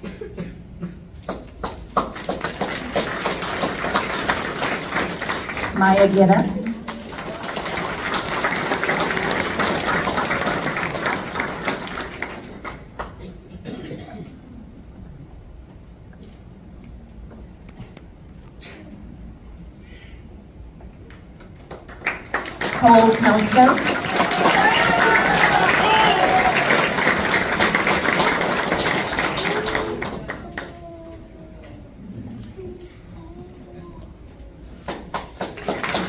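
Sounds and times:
audience clapping: 0:01.2 - 0:13.5, 0:21.1 - 0:31.0, 0:34.8 - 0:36.0.

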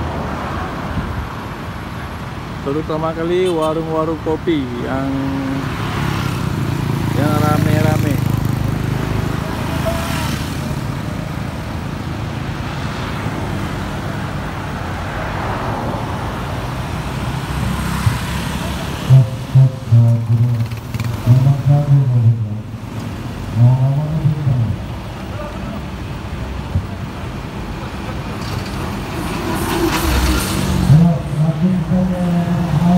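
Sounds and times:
vehicle engines running: 0:00.0 - 0:32.9
car passing close by: 0:05.7 - 0:10.9, 0:14.8 - 0:19.3, 0:28.6 - 0:31.4.

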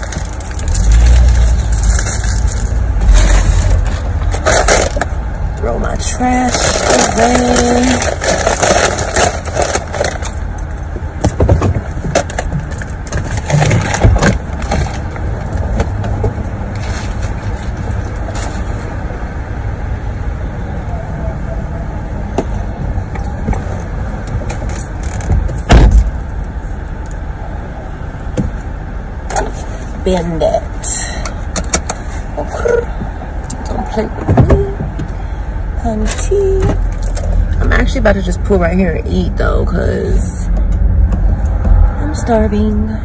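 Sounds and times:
car engine rumble inside cabin: 0:00.0 - 0:43.0.

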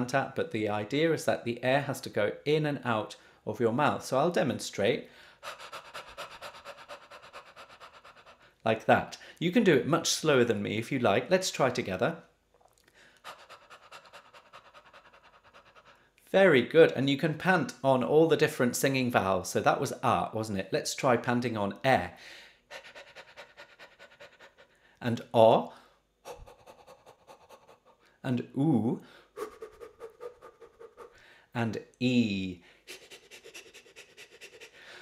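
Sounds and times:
man panting quickly: 0:05.1 - 0:08.6, 0:13.2 - 0:16.1, 0:22.2 - 0:25.0, 0:29.1 - 0:31.5, 0:32.6 - 0:35.0.

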